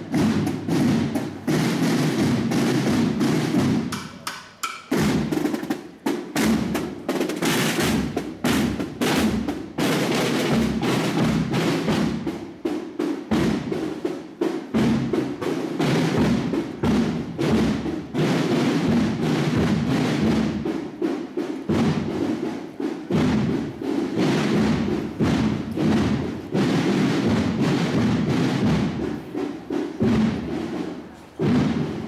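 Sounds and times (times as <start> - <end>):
snare drums playing march cadence: 0.0 - 32.0.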